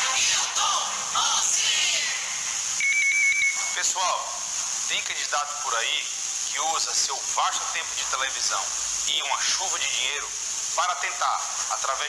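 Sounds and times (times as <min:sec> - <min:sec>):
radio broadcast speech: 0:03.6 - 0:12.0.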